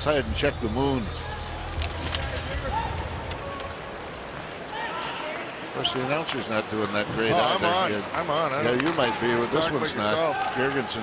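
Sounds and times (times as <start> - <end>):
hockey sticks and puck clacking: 6.1 - 7.3, 8.0 - 9.5, 10.1 - 11.0.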